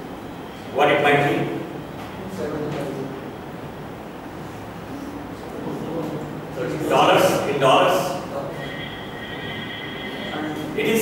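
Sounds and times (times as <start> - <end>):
voices calling out answers: 6.2 - 11.0
thin high held tone: 8.3 - 11.0.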